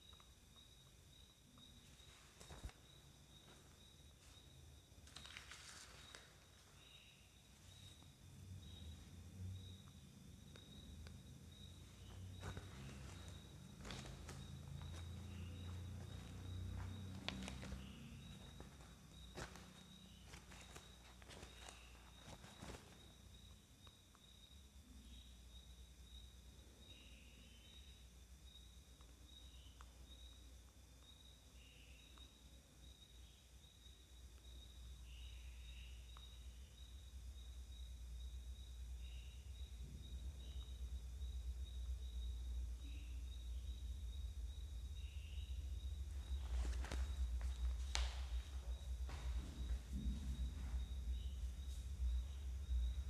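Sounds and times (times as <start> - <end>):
thin steady high whine: 0.0 - 53.0.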